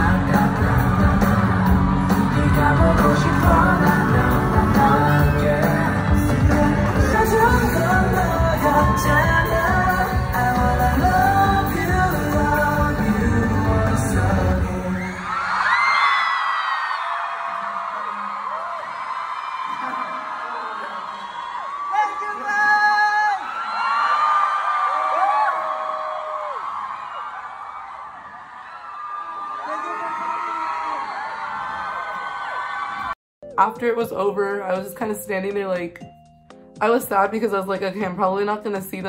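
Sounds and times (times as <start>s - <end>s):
concert music: 0.0s - 15.7s
crowd screaming and cheering: 0.0s - 33.2s.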